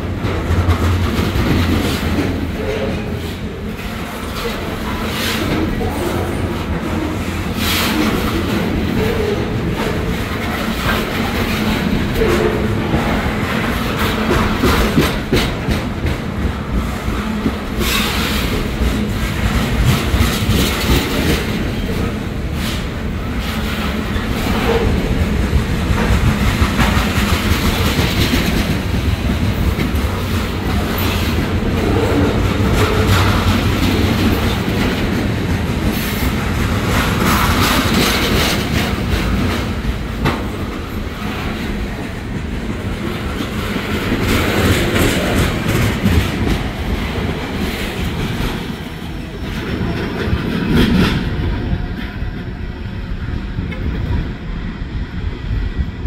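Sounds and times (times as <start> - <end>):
train wheels clacking over rail joints: 0.0 - 52.6.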